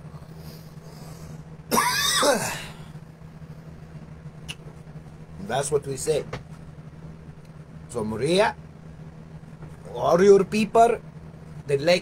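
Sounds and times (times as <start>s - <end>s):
man clearing his throat: 1.7s - 2.9s.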